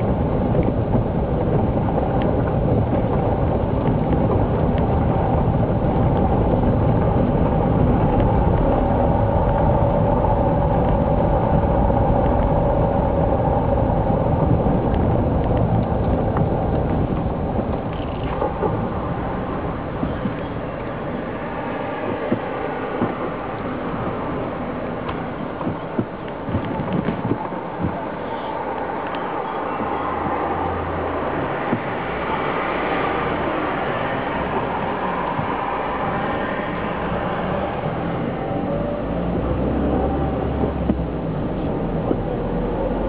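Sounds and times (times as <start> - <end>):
traffic noise: 0.0 - 43.0.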